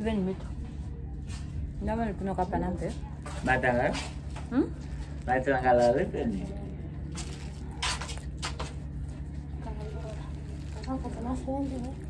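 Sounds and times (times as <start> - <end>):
woman's voice: 0.0 - 0.6, 1.8 - 3.2, 9.6 - 12.0
plastic bag rustling: 3.0 - 12.0.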